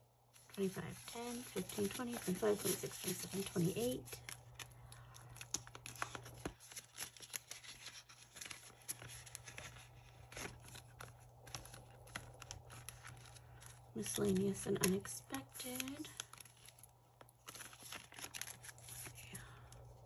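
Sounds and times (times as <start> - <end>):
paper money rustling: 0.4 - 19.5.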